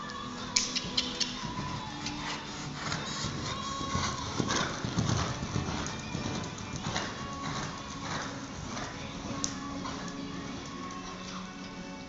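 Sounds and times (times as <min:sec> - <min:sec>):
background music: 0:00.0 - 0:12.0
horse hoofbeats on arena footing: 0:00.0 - 0:12.0.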